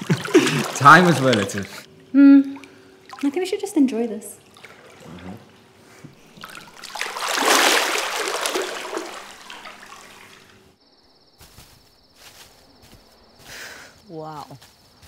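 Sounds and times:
pool water splashing: 0.0s - 10.8s.

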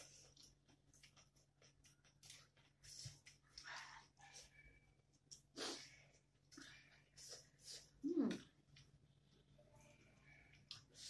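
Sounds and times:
chewing smacks: 0.0s - 3.8s.

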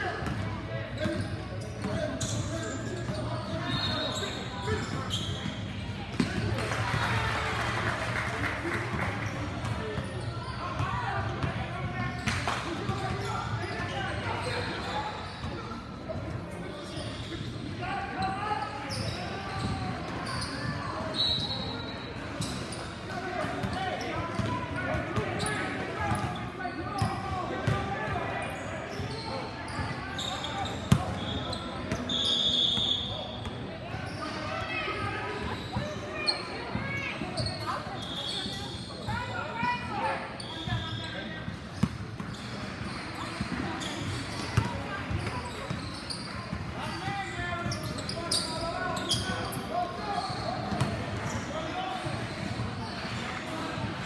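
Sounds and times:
voices echoing in hall: 0.0s - 54.0s
sneakers squeaking on court: 0.2s - 6.9s, 9.0s - 53.8s.

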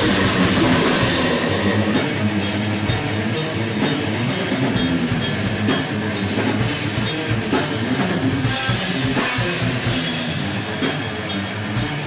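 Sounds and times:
fast drum hits: 0.0s - 3.2s
death metal band playing live: 0.0s - 12.0s
distorted electric guitars: 0.0s - 12.0s.

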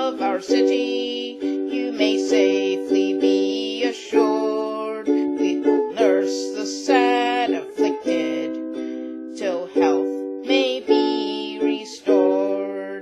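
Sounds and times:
ukulele strumming chords: 0.0s - 13.0s
woman singing a folk ballad: 0.0s - 13.0s.

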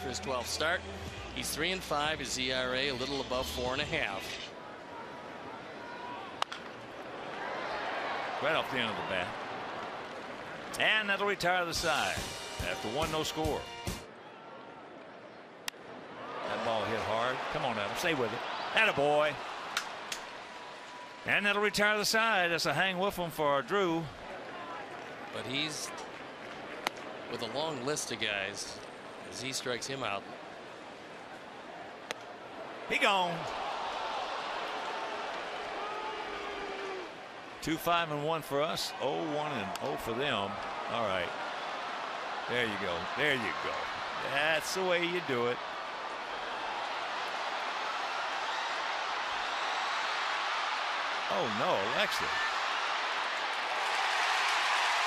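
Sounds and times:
stadium crowd murmur: 0.0s - 12.0s, 23.2s - 37.6s
ballpark crowd noise: 0.0s - 55.0s
bat hitting baseball crack: 6.4s - 6.8s.

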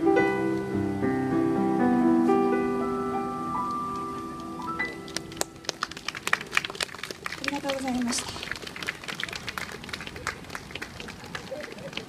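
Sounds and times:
electric keyboard notes: 0.0s - 6.2s
audience clapping: 3.9s - 12.0s.

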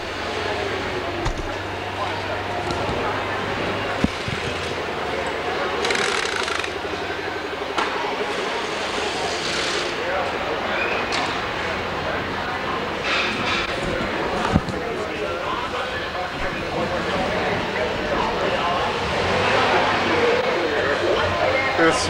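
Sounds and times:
steady machine drone: 0.0s - 10.7s, 11.3s - 22.0s
indistinct voices: 0.0s - 22.0s.

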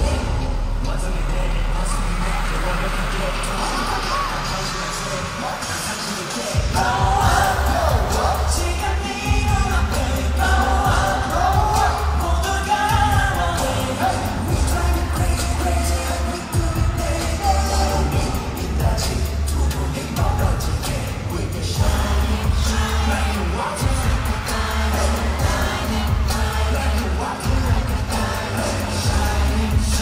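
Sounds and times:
heavy bass beat: 0.0s - 30.0s
live pop music with singing: 0.0s - 30.0s.

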